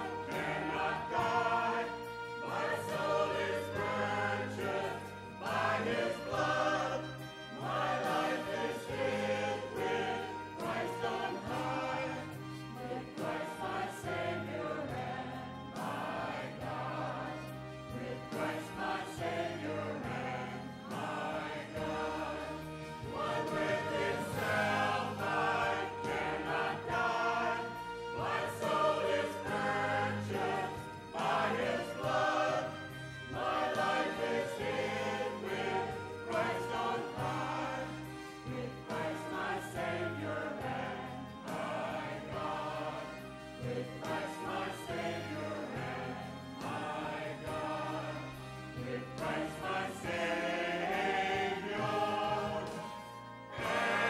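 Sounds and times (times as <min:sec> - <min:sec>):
choir singing in harmony: 0:00.0 - 0:54.0.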